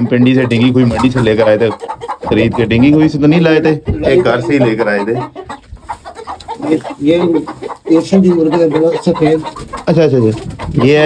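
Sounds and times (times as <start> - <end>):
man talking: 0.0 - 5.4, 6.5 - 11.0
chickens clucking: 0.0 - 11.0.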